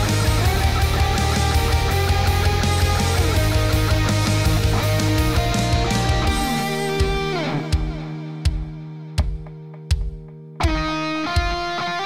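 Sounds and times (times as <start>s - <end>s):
electric guitar solo: 0.0s - 12.0s.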